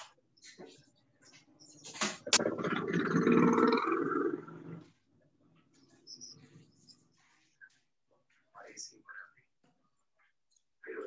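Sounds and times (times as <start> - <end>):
loud animal-like vocal sound: 2.3 - 5.0.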